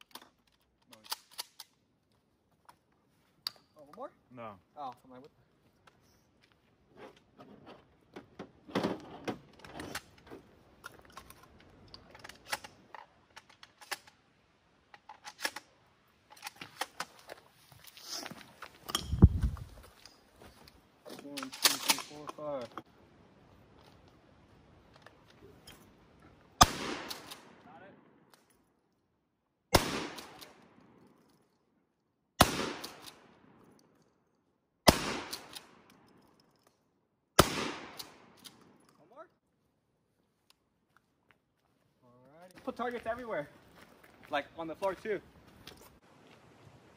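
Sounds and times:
shotgun shots with echo: 26.6 - 27.5, 29.7 - 30.4, 32.4 - 33.2, 34.9 - 35.5, 37.4 - 38.3.

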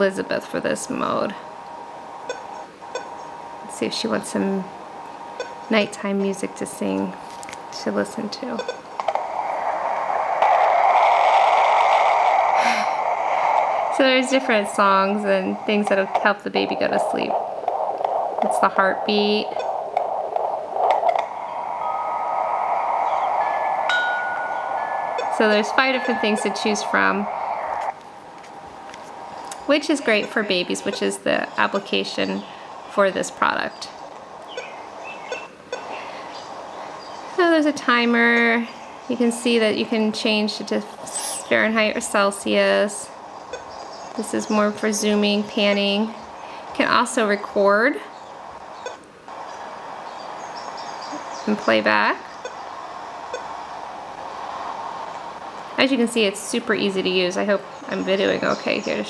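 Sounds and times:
steady hiss: 0.0 - 59.0
steady rushing noise from speaker: 0.0 - 59.0.

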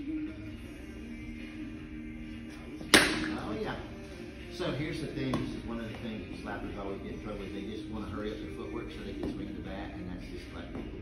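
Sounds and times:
bat striking softball: 3.0 - 3.4.

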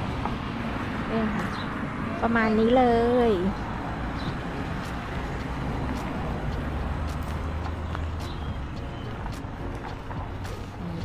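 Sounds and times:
tires on gravel: 0.0 - 11.0
truck engine rumble: 0.0 - 11.0.

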